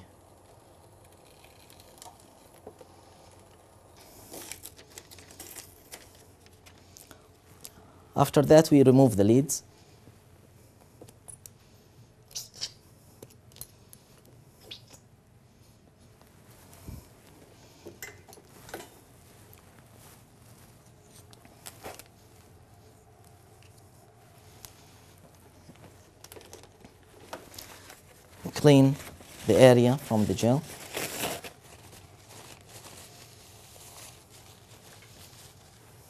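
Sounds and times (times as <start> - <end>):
light clicks and knocks of electrodes: 0.4 - 3.7
paper towel tearing from roll: 27.7 - 35.9
paper rubbing on skin: 27.7 - 36.0.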